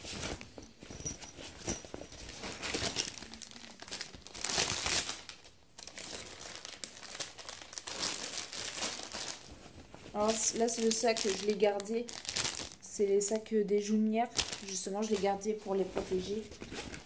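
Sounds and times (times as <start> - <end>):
plastic bag crinkling: 1.6 - 13.5, 14.2 - 17.0.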